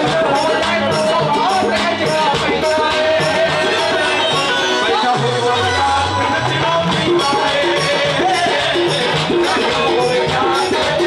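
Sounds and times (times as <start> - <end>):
live song with singing and band: 0.0 - 11.0.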